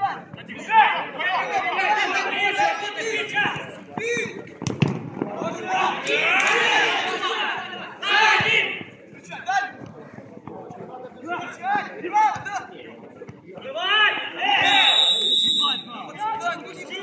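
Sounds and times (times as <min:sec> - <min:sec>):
footballers shouting: 0:00.0 - 0:09.8, 0:13.6 - 0:17.0
referee's whistle blast: 0:14.6 - 0:16.0.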